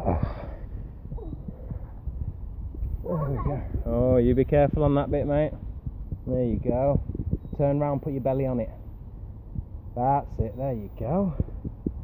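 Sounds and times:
camera microphone jostled thumps: 0:00.0 - 0:08.2, 0:09.0 - 0:10.5, 0:11.3 - 0:12.0
faint voice: 0:03.0 - 0:03.7.

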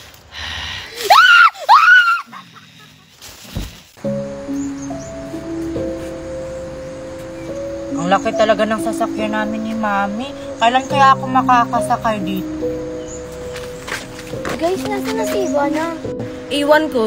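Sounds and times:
loud screams: 0:01.0 - 0:02.4
background music of held notes: 0:04.0 - 0:17.0.

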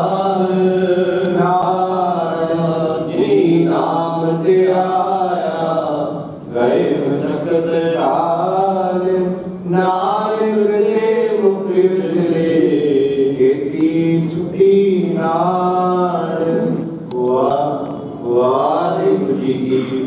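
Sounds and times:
devotional chant singing: 0:00.0 - 0:20.0.

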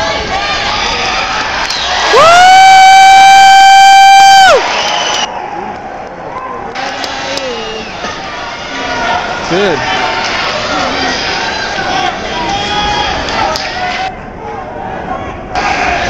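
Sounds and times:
crowd cheering: 0:00.0 - 0:14.1, 0:15.0 - 0:16.0.

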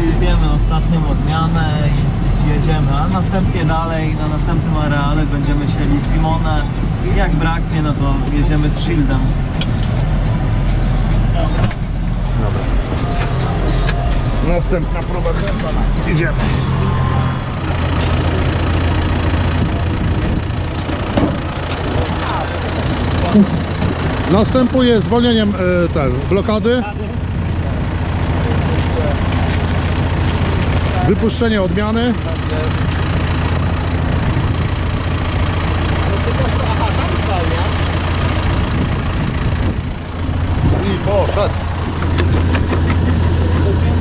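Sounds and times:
tractor diesel engine running: 0:00.0 - 0:44.0.

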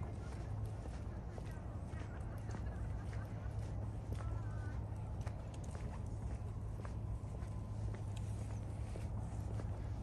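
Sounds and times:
footsteps on paved path: 0:00.0 - 0:10.0
low outdoor rumble: 0:00.0 - 0:10.0.

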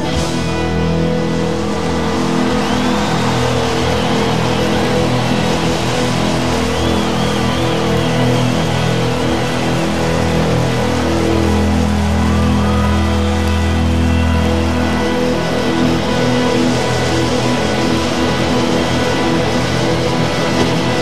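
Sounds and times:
rock band playing live: 0:00.0 - 0:21.0.

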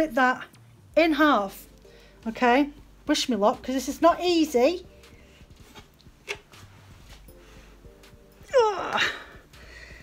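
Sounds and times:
wool fibres rustling: 0:00.1 - 0:10.0.

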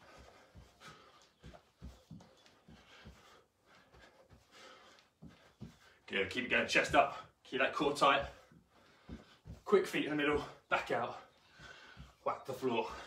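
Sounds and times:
person breathing: 0:00.0 - 0:06.1, 0:08.3 - 0:09.6, 0:11.2 - 0:12.2
feet in socks thudding on rug: 0:00.0 - 0:13.0.

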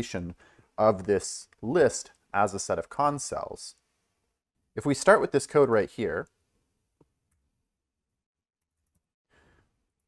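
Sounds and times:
faint breath: 0:00.4 - 0:00.8, 0:09.3 - 0:09.8.

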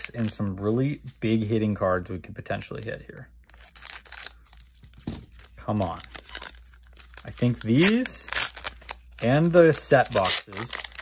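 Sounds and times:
foil crinkling: 0:05.4 - 0:11.0
scissors cutting foil wrapper: 0:06.0 - 0:11.0.

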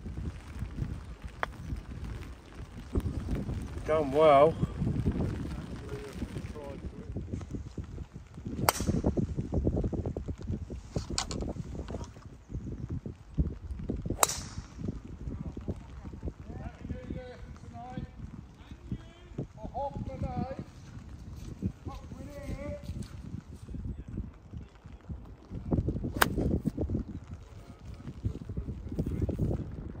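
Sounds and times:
wind buffeting microphone: 0:00.0 - 0:30.0
golf clubs striking balls: 0:08.6 - 0:09.2, 0:14.2 - 0:14.8.

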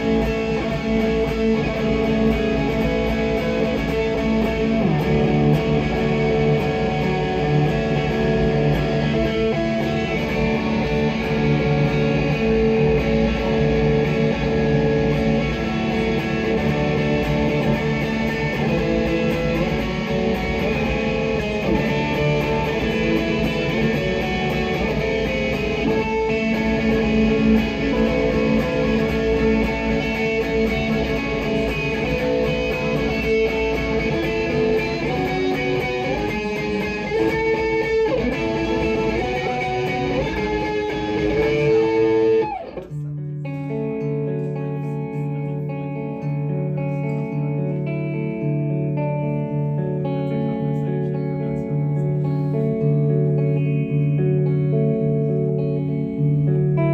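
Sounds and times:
electric guitar playing: 0:00.0 - 0:56.9.

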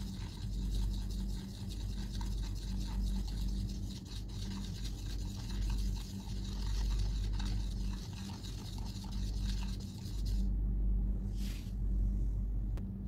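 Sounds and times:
paintbrush scrubbing paint: 0:00.0 - 0:10.5
low hum: 0:00.0 - 0:13.0.

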